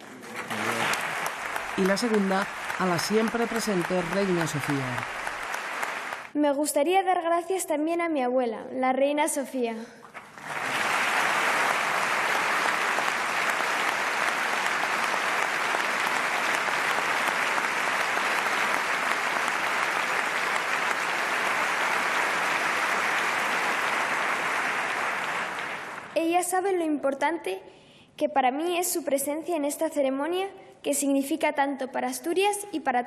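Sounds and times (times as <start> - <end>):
audience applauding: 0.0 - 6.4, 10.1 - 26.2.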